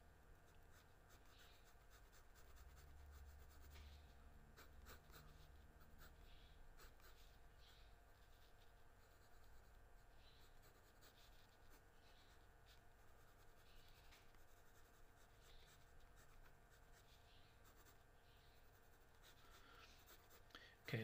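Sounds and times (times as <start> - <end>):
pencil scratching on paper: 0.5 - 21.0.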